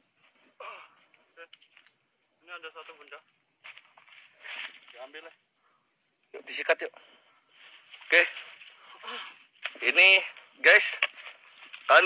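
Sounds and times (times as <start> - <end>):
faint steady hiss: 0.0 - 12.0
man speaking: 6.3 - 7.0, 8.1 - 8.4, 9.8 - 11.1.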